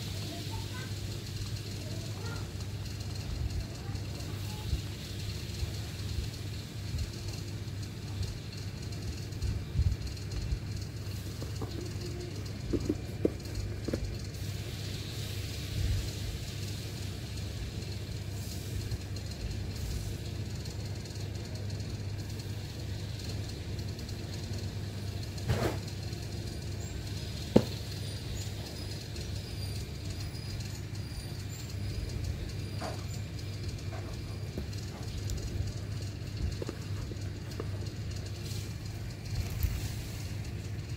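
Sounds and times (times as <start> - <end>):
low background rumble: 0.0 - 40.9.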